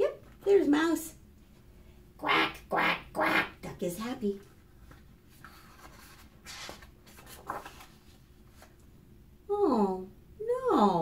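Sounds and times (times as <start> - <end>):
book page turning: 4.8 - 8.9.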